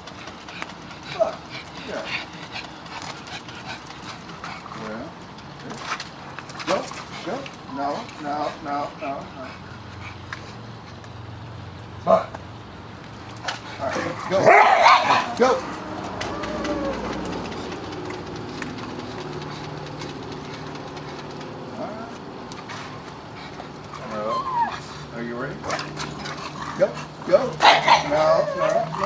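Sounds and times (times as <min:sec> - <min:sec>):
dogs barking and yipping: 0:13.2 - 0:21.8, 0:22.4 - 0:29.0
dog whining: 0:13.8 - 0:17.7, 0:24.0 - 0:25.1, 0:27.6 - 0:29.0.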